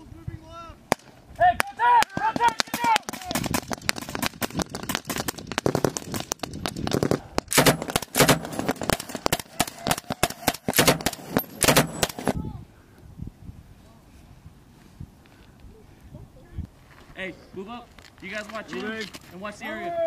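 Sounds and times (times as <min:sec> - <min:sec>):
rifle and machine gun fire: 0:02.1 - 0:12.4.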